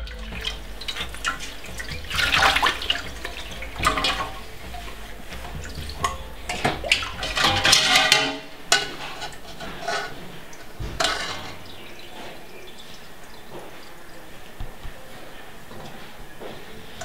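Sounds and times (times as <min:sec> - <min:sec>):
music: 0:00.0 - 0:17.0
water splashing in metal basin: 0:00.0 - 0:17.0.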